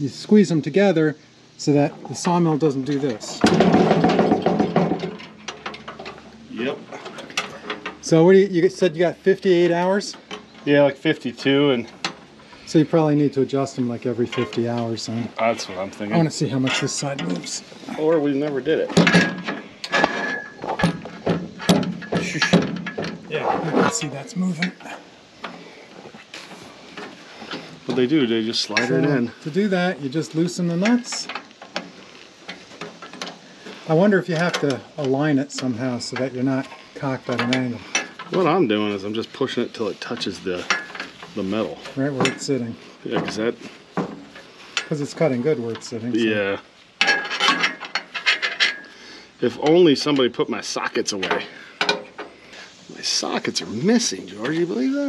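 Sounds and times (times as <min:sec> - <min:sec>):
metallic rattling clatter: 0:01.9 - 0:06.3, 0:18.7 - 0:25.6, 0:40.0 - 0:45.2, 0:47.0 - 0:49.0.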